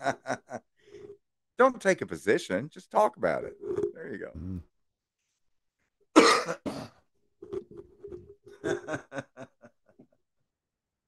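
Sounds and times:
man coughing: 0:06.2 - 0:07.0.

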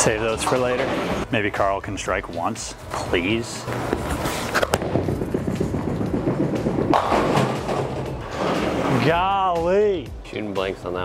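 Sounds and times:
bowling pins crashing: 0:03.9 - 0:09.2
bowling ball rumbling down lane: 0:04.7 - 0:09.1.

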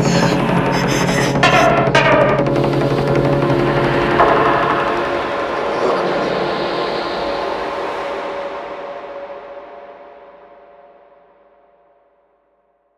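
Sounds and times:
noisy synth wash: 0:00.0 - 0:09.4.

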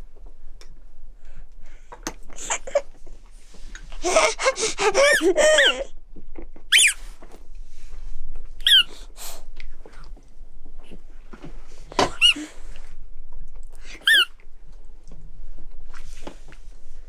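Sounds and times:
baby squealing: 0:04.0 - 0:05.9, 0:06.7 - 0:07.0, 0:08.6 - 0:08.9, 0:12.1 - 0:12.5, 0:14.0 - 0:14.3.

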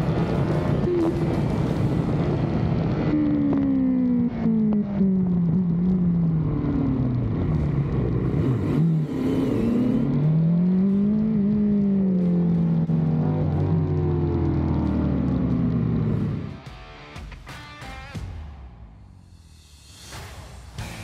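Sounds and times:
motorcycle engine at low revs: 0:00.0 - 0:16.6.

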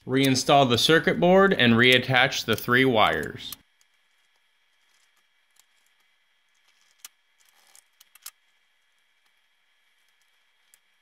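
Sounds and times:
clicks of plastic parts: 0:03.5 - 0:08.4.

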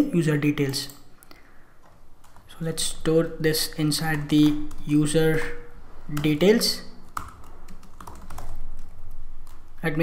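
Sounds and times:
computer keyboard typing: 0:02.2 - 0:02.5, 0:04.1 - 0:05.1, 0:06.1 - 0:09.7.

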